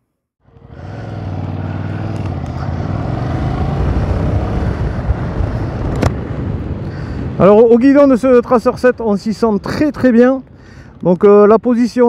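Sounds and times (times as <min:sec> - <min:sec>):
motorcycle engine accelerating: 0:00.4 - 0:07.4
wind noise on microphone: 0:03.4 - 0:07.4.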